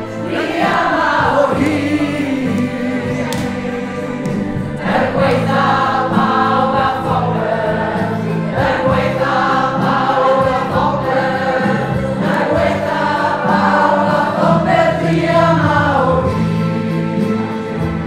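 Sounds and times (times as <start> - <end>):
women singing in chorus: 0.0 - 17.4.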